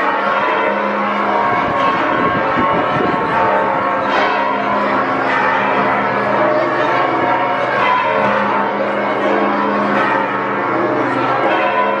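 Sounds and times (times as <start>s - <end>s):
church bells ringing: 0.0s - 12.0s.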